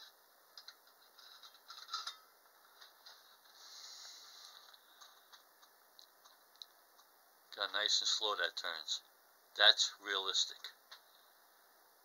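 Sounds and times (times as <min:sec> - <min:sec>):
faint whir: 0:00.0 - 0:12.0.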